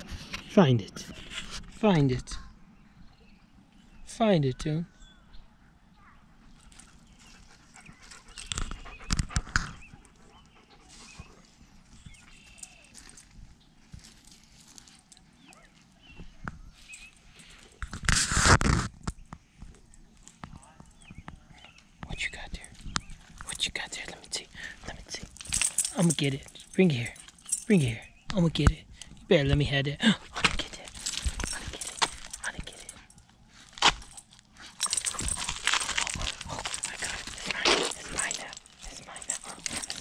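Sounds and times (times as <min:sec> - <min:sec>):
dog chewing in pine needles: 0:30.8 - 0:40.0.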